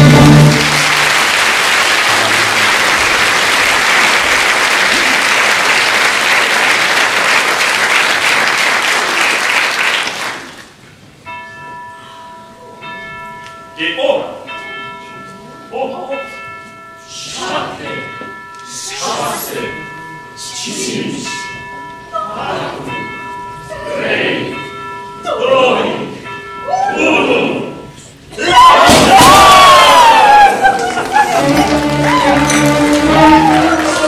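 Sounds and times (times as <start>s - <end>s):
orchestra final chord: 0.0s - 1.2s
audience applause: 0.0s - 10.8s, 29.1s - 34.0s
clock bell striking: 11.2s - 28.2s.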